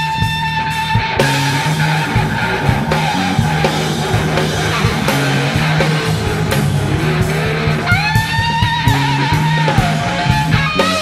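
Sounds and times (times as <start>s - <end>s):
bass notes: 0.0s - 11.0s
distorted electric guitar: 0.0s - 11.0s
drum hits: 1.1s - 11.0s.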